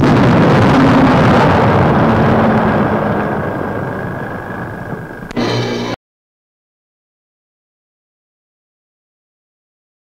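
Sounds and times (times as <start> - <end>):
artillery shell exploding: 0.0 - 6.0.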